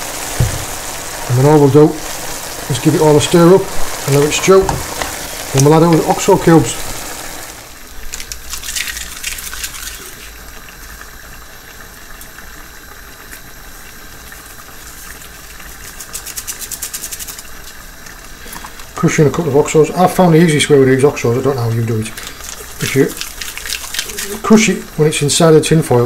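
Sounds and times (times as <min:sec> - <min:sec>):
food sizzling in a pot: 0:00.0 - 0:26.0.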